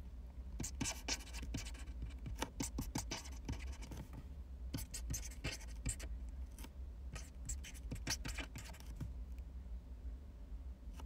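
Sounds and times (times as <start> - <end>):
pen scratching on paper: 0.6 - 4.1, 4.8 - 6.1, 7.2 - 9.0.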